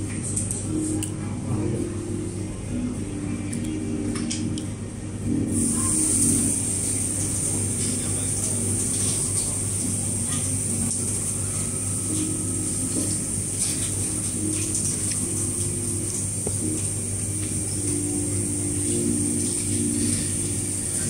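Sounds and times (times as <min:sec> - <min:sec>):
high hiss: 0:05.5 - 0:13.7.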